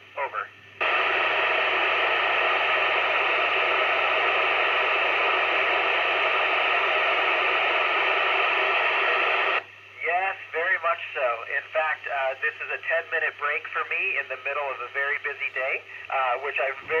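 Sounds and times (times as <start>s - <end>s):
radio static hiss: 0.0s - 17.0s.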